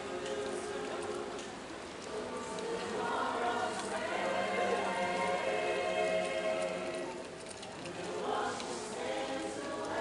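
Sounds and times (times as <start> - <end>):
choir singing in harmony: 0.0 - 7.3, 8.0 - 10.0.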